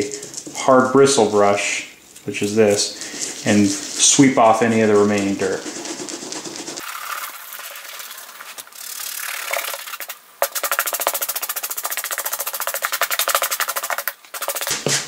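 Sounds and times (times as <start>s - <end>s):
brush scrubbing leather: 3.4s - 7.4s, 8.8s - 14.9s.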